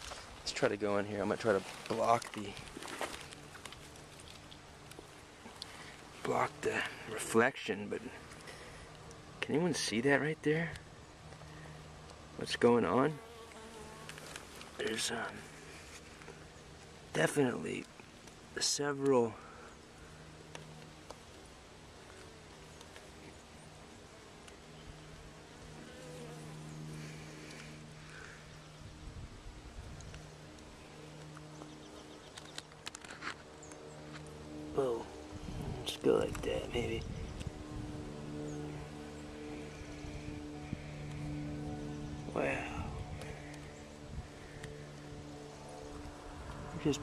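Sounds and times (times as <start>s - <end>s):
bees buzzing: 1.1s - 9.4s, 10.9s - 18.6s, 19.2s - 47.0s.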